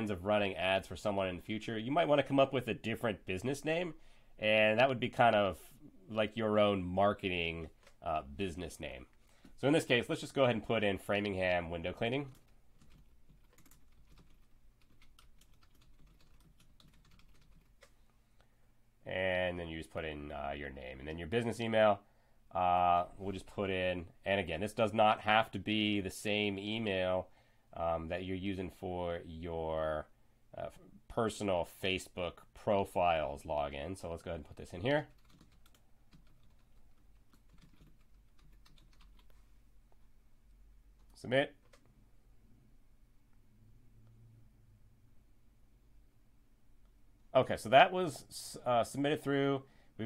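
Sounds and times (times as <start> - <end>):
keyboard typing: 12.2 - 18.0, 35.0 - 40.1, 41.0 - 42.0.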